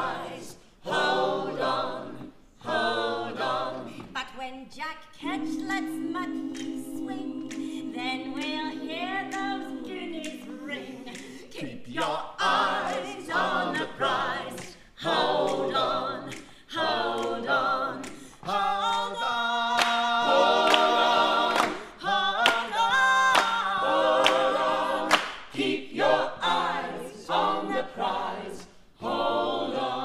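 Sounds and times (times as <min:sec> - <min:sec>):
voices singing a cappella: 0:00.0 - 0:04.3, 0:05.1 - 0:30.0.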